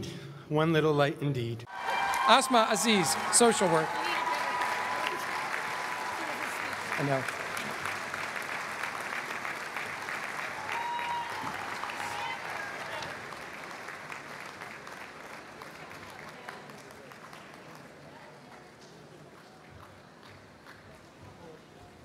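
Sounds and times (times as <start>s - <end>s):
audience applauding: 1.7s - 21.1s.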